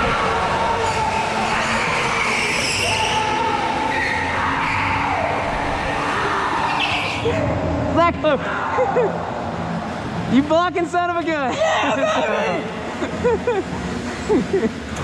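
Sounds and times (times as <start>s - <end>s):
go-kart motors whining: 0.0s - 10.2s.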